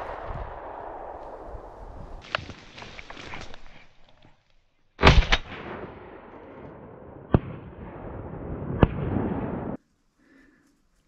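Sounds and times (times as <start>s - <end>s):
shotgun shots: 5.0s - 9.8s.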